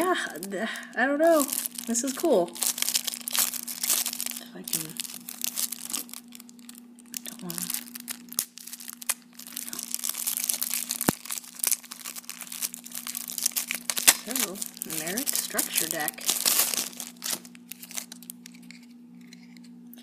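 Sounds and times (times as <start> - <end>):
plastic shrink wrap crinkling: 0.0 - 20.0.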